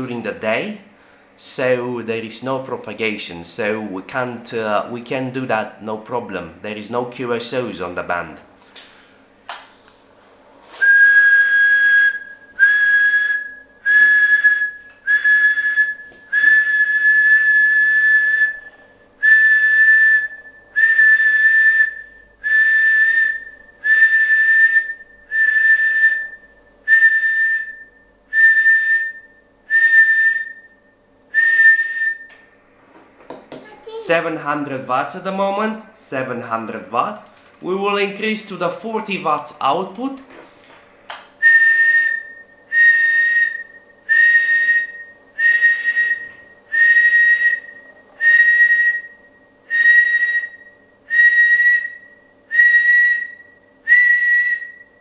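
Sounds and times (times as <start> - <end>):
man whistling high note: 10.8 - 32.4, 41.4 - 55.0.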